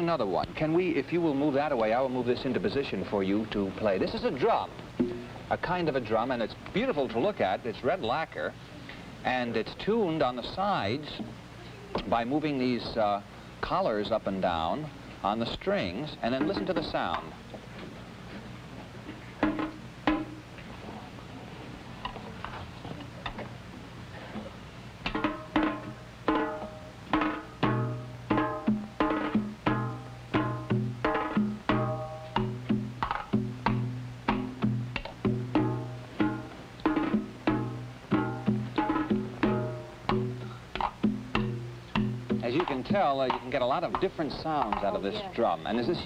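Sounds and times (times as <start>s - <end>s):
hourglass drum strokes: 25.0s - 44.9s.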